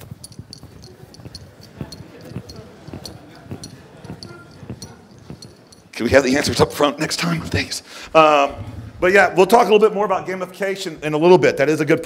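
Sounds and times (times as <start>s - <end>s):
footsteps on hard floor: 0.0s - 6.0s
light ticking and rustle: 0.0s - 6.0s.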